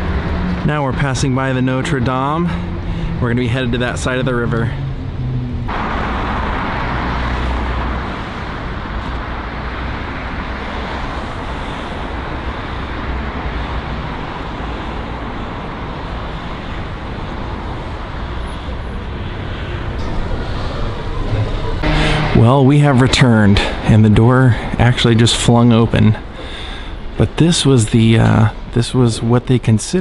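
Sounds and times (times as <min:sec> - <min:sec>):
road traffic hiss and rumble: 0:00.0 - 0:30.0.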